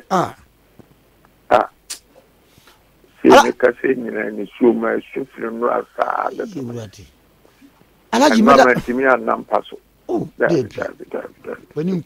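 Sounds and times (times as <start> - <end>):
man humming: 0.0 - 0.5.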